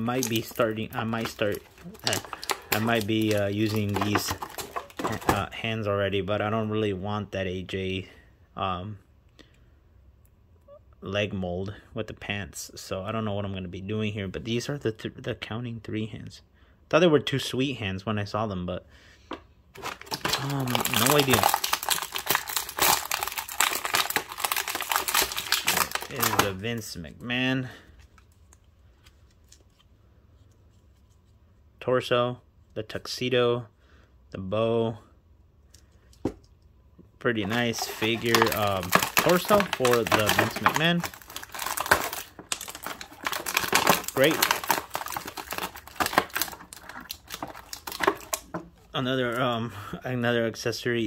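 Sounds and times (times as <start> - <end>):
plastic bag crinkling: 0.0 - 5.5, 19.8 - 26.8, 37.4 - 49.5.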